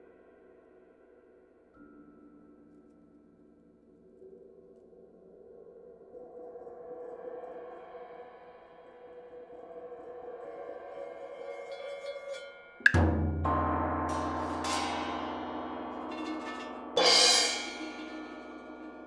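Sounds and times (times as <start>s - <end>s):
metallic percussion struck with mallets: 12.8s - 19.0s
cymbal-like crash: 13.0s - 19.0s.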